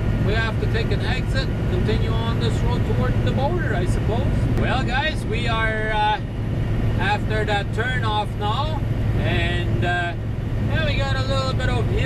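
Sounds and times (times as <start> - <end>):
diesel truck engine drone: 0.0 - 12.0
man talking: 0.2 - 6.3, 7.0 - 12.0.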